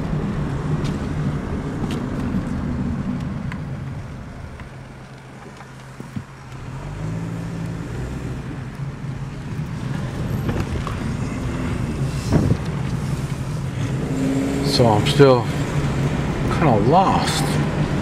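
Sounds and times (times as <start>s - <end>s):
car engine and road noise: 0.0s - 18.0s.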